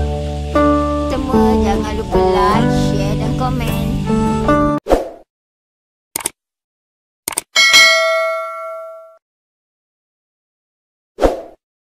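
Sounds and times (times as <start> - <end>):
mouse clicks: 7.3 - 7.5
bright bell ding: 7.6 - 9.2.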